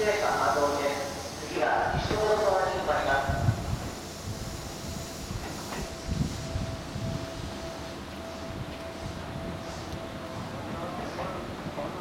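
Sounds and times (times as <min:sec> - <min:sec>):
electric train rumble: 0:00.0 - 0:12.0
thin steady whine: 0:00.0 - 0:12.0.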